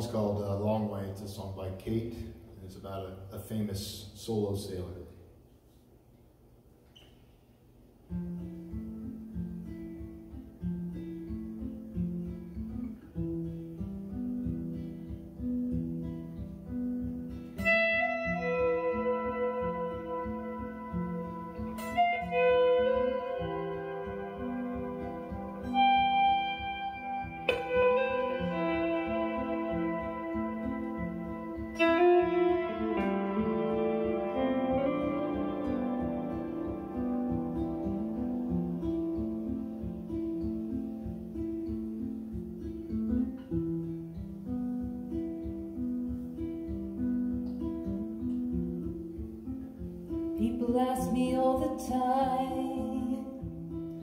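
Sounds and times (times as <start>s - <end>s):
low picked guitar figure: 8.1s - 50.6s
ringing guitar melody notes: 8.1s - 54.0s.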